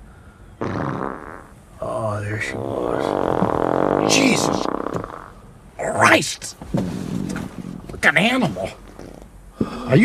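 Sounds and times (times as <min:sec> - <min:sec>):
loud buzzy fart: 0:00.6 - 0:01.6, 0:02.4 - 0:05.4.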